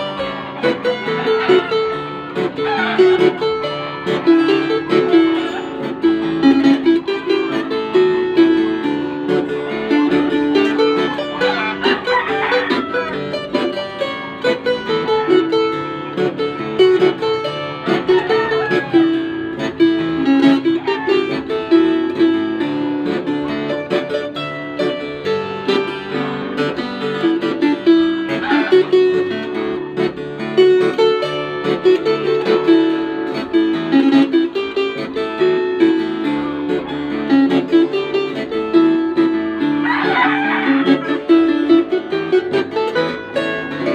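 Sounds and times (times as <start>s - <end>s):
floor harp played fingerstyle: 0.0s - 43.9s.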